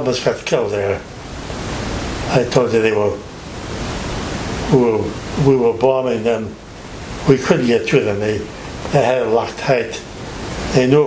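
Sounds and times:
man speaking: 0.0s - 1.0s, 2.3s - 3.2s, 4.7s - 6.6s, 7.2s - 10.1s, 10.7s - 11.0s
background hiss: 0.0s - 11.0s.

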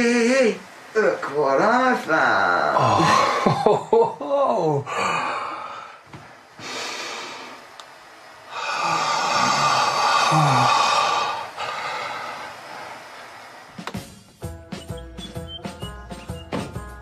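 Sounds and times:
man groaning: 2.6s - 5.6s, 8.6s - 11.8s
man breathing heavily: 2.8s - 3.6s, 4.8s - 7.7s, 8.4s - 13.6s.

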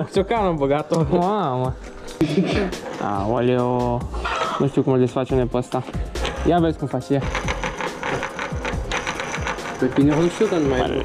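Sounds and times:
bicycle freewheel ticking: 7.2s - 11.0s.

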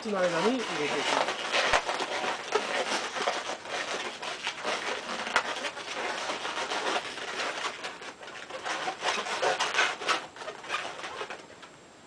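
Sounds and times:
balloons squeaking and rubbing: 0.0s - 11.4s.

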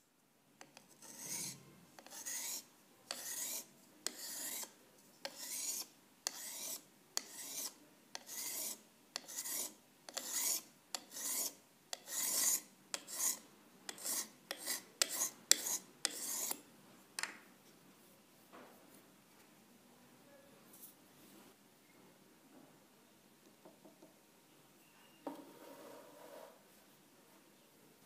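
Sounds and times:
sharpening stone scraping scissor blade: 0.7s - 16.6s.

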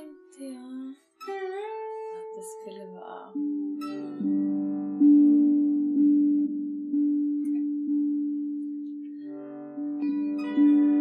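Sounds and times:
plucked string drone note: 0.0s - 11.0s.

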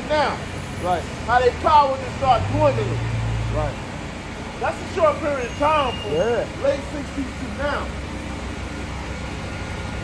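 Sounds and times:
even street hiss: 0.0s - 10.0s
low traffic rumble: 0.0s - 10.0s.

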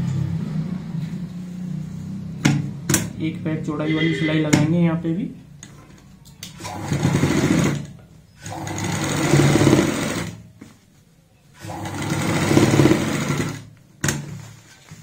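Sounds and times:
sewing machine stitching: 6.6s - 10.4s, 11.6s - 14.2s.

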